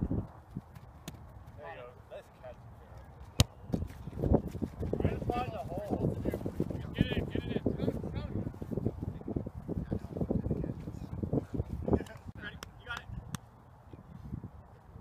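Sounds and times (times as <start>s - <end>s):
wind rumbling on microphone: 0.0s - 1.4s, 3.6s - 15.0s.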